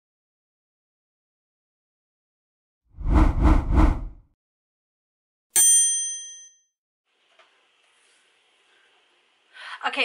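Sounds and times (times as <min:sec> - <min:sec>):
bright bell-like ding: 0:05.6 - 0:06.7.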